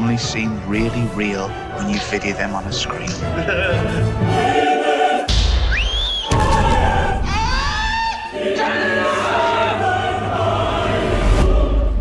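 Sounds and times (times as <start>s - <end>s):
orchestral music: 0.0s - 5.7s, 8.2s - 12.0s
choir singing: 0.4s - 12.0s
man laughing: 3.1s - 4.2s.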